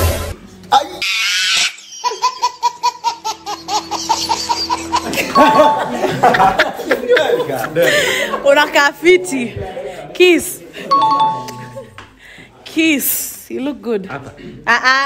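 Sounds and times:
baby laughing: 0.8 - 6.1
people laughing and talking: 1.8 - 13.0.

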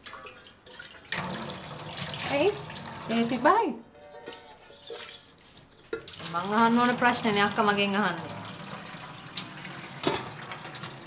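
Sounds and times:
tap water running into sink: 0.0 - 3.6, 5.9 - 11.0
water splashing on steel pot: 0.0 - 3.6, 4.2 - 11.0.

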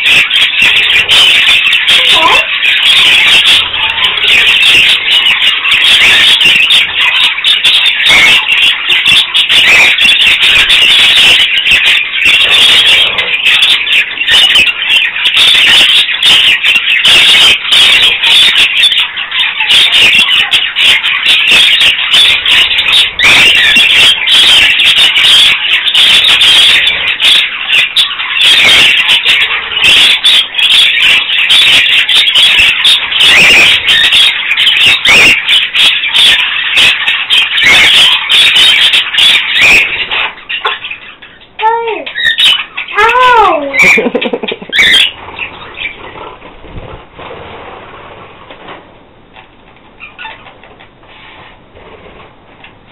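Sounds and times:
budgerigars chattering and warbling: 0.0 - 52.9.

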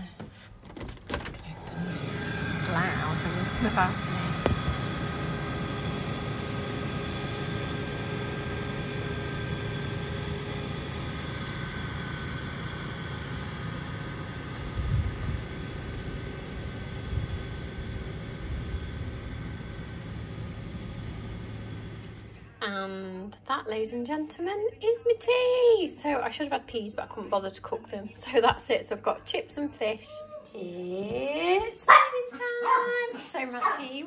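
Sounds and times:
faint machine whine: 0.0 - 34.0.

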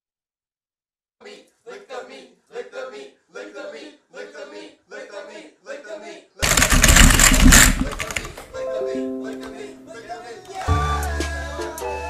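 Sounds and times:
loud distorted rattling burst: 6.4 - 8.5.

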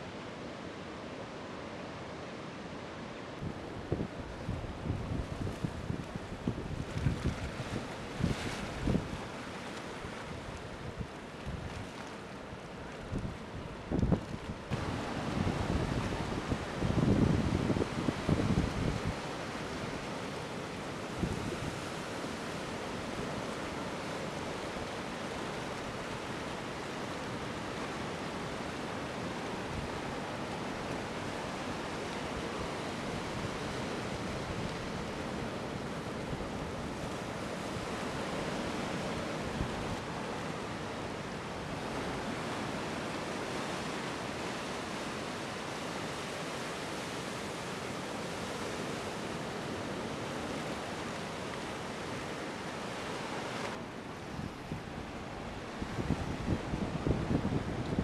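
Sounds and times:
ocean waves breaking: 14.5 - 58.0
wind buffeting microphone: 55.8 - 58.0.

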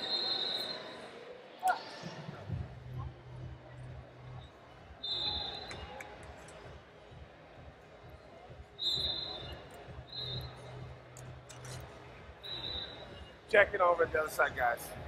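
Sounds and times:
high whistle-like tones: 0.0 - 1.8, 5.0 - 6.0, 8.8 - 10.7, 12.4 - 13.3
faint distant voices: 0.0 - 15.0.

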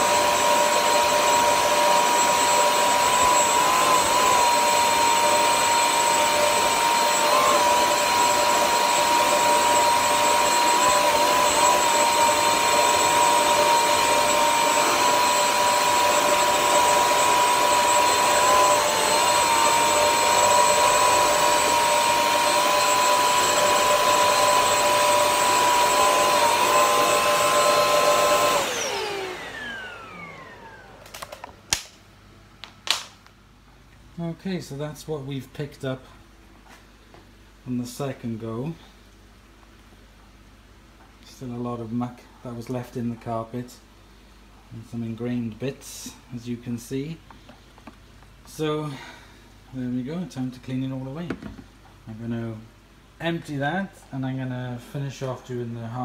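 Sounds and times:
floor cleaner motor whine: 0.0 - 31.9.

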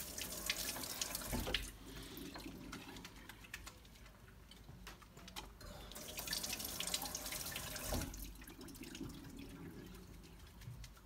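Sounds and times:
tap water running over hands: 0.0 - 3.7, 6.0 - 11.0.

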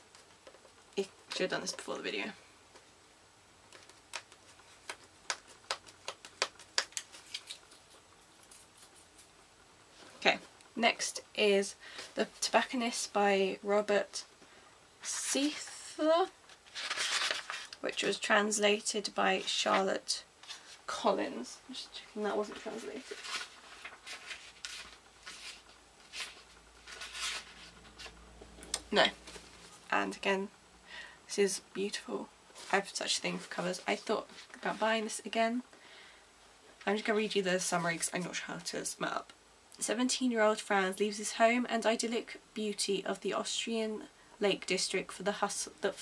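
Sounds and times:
book pages rustling: 3.7 - 9.4, 16.4 - 18.3, 19.4 - 20.9, 22.4 - 28.2, 29.2 - 29.9.

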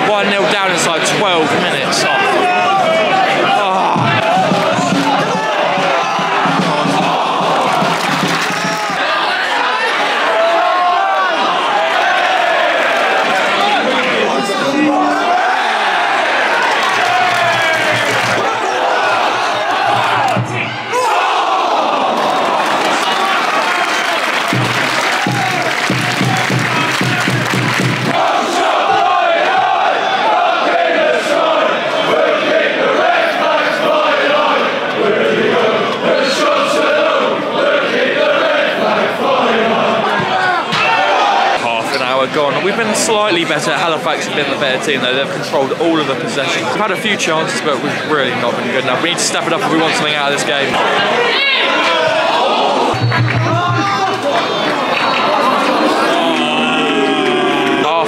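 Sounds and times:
football crowd chanting and singing: 0.0 - 58.0.

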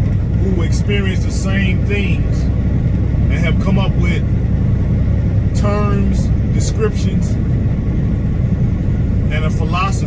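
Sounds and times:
truck cab highway drone: 0.0 - 10.0.

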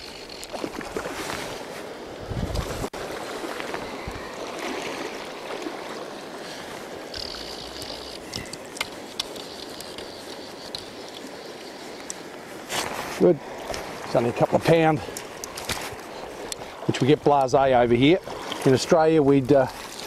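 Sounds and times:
river flowing: 0.0 - 20.0.

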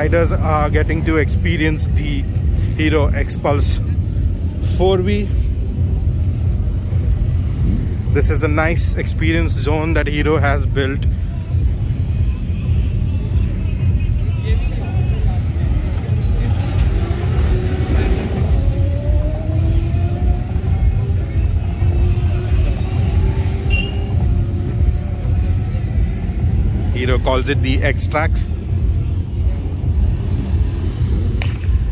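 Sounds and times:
dirt bike engines running: 0.0 - 31.9
heavy low rumble: 0.0 - 31.9.

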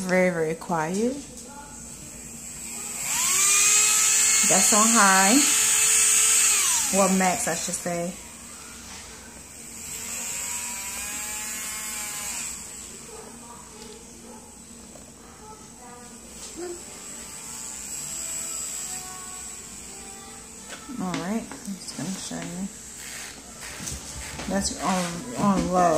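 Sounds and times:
electric nail drill whining: 2.4 - 8.2, 9.6 - 13.0, 16.8 - 21.4.

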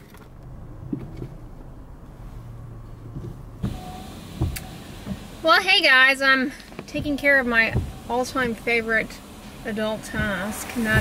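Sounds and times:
car idling hum: 0.0 - 11.0
thump: 4.4 - 5.2, 10.1 - 11.0.

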